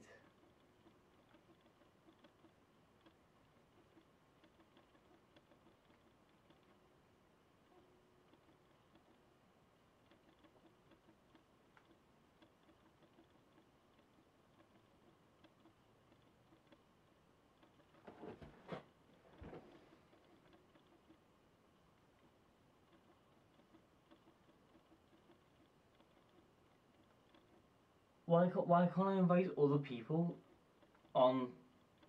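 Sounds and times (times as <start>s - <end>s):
computer mouse clicks: 0.1s - 7.0s, 7.6s - 9.3s, 10.0s - 18.0s, 19.4s - 21.3s, 22.1s - 27.7s.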